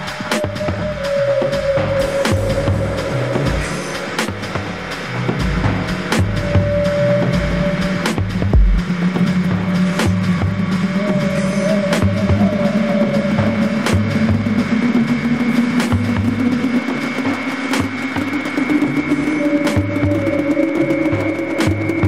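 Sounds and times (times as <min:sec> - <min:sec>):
percussive techno music: 0:01.9 - 0:12.4.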